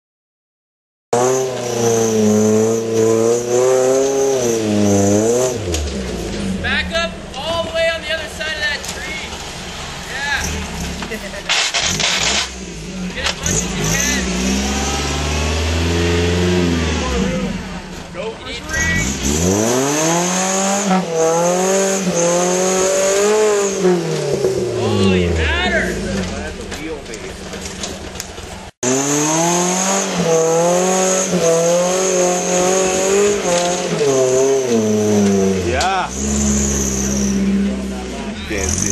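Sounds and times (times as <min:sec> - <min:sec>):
engine revving hard: 0:01.1 - 0:07.1, 0:09.7 - 0:26.8, 0:28.8 - 0:38.9.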